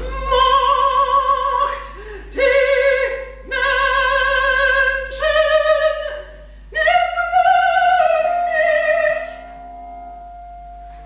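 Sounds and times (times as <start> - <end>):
soprano operatic note: 6.8 - 11.0
soft accompanying chord: 7.2 - 11.0.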